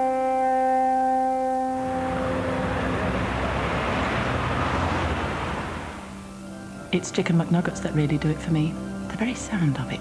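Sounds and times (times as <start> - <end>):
steady rushing noise: 1.8 - 6.4.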